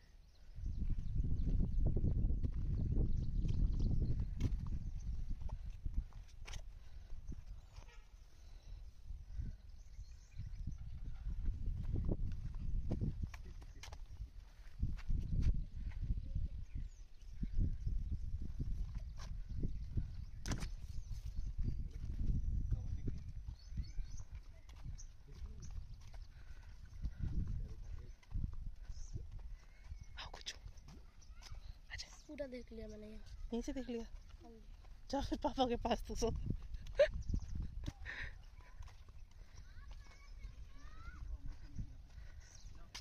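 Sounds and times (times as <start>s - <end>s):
wind buffeting microphone: 0.3s - 7.8s, 8.4s - 43.0s.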